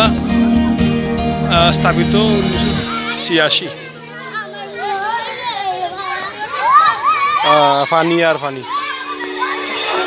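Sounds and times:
children calling out and chattering: 0.0s - 10.0s.

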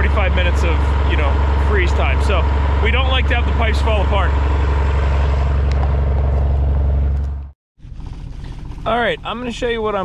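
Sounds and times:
engine running with deep hum: 0.0s - 10.0s
quieter vehicle engine running: 0.0s - 10.0s.

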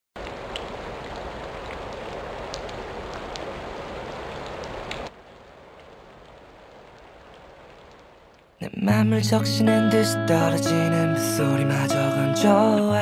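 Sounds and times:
steady rain falling: 0.2s - 13.0s.

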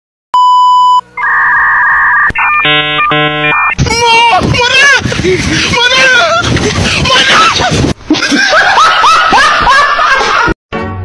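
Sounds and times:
steady single-pitch test beep: 0.4s - 3.8s
two-note electronic beep: 0.4s - 3.8s
buzzy electronic tones: 1.1s - 3.8s.

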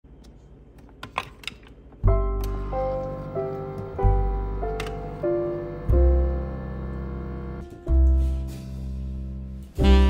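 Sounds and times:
piano background music: 2.0s - 10.0s.

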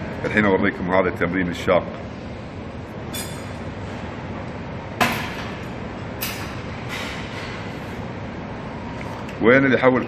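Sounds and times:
gym background rumble: 0.0s - 10.0s.

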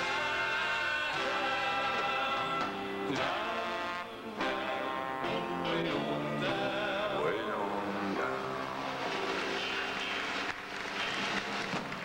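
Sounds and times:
backing singers: 0.0s - 10.4s
live band music: 0.0s - 11.8s.

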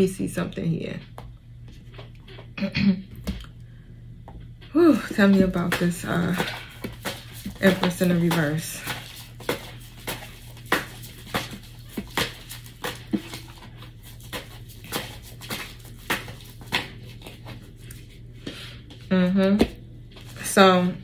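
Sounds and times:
steady low hum: 0.0s - 21.0s
cards being shuffled: 5.4s - 18.1s.

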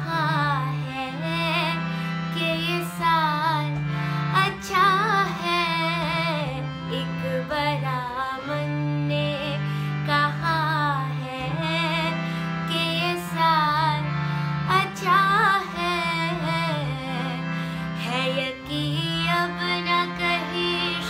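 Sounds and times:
woman singing: 0.0s - 21.0s.

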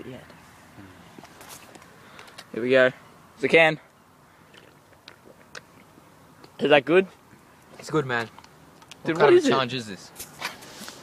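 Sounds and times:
person sipping from can: 4.5s - 5.7s.

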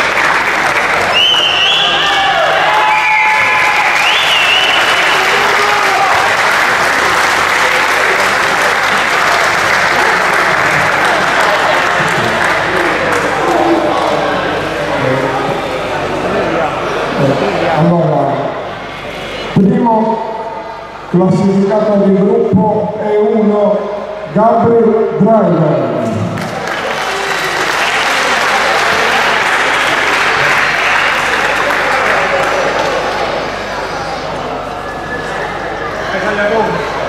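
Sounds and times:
audience applauding: 0.0s - 14.8s, 26.3s - 34.2s
scattered voices: 5.3s - 23.8s.

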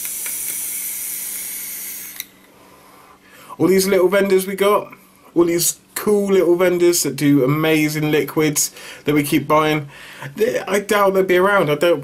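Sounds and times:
vaporizer air rushing: 0.0s - 3.6s
heated coil sizzling: 0.0s - 4.8s.

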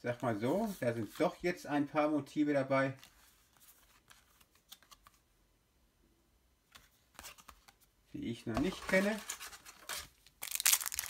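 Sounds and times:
foil wrapper crinkling: 9.8s - 11.0s.

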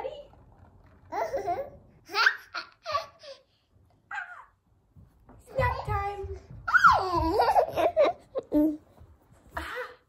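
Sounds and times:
toddler laughing: 1.1s - 3.5s, 6.9s - 8.8s.

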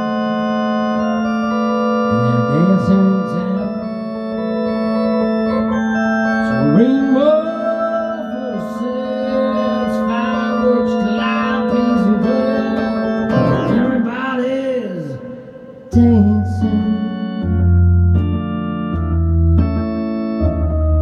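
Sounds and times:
electronic organ chords: 0.0s - 21.0s.

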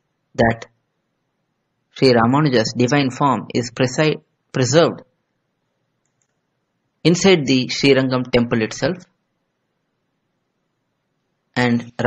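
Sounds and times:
person narrating: 0.4s - 0.7s, 2.0s - 5.1s, 7.1s - 9.2s, 11.6s - 12.0s.

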